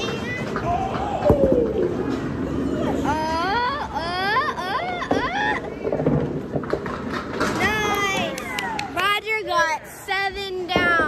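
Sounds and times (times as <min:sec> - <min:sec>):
bowling ball rolling on wooden lane: 0:05.0 - 0:08.4.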